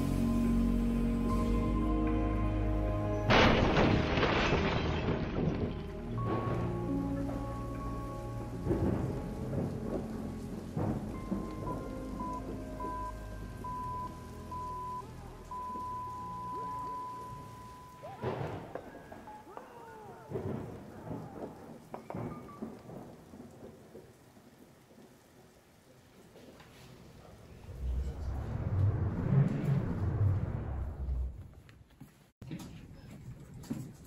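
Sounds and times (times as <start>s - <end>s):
rain-like hiss and rumble: 0.0s - 3.5s, 5.0s - 31.6s
soundtrack music with low notes: 0.0s - 4.0s, 5.1s - 17.7s.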